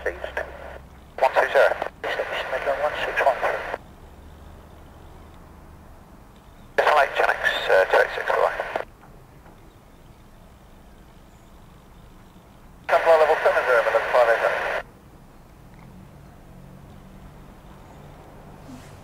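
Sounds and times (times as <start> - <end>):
faint steady hiss: 0.0 - 3.8, 6.4 - 8.9, 10.2 - 14.9
voice over radio: 0.0 - 3.8, 6.8 - 8.8, 12.9 - 14.8.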